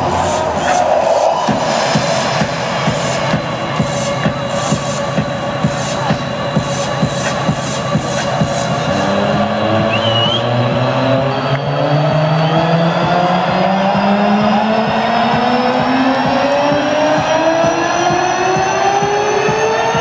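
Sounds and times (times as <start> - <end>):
synth riser climbing in pitch: 0.0 - 3.5, 8.8 - 20.0
electronic dance music: 0.0 - 20.0.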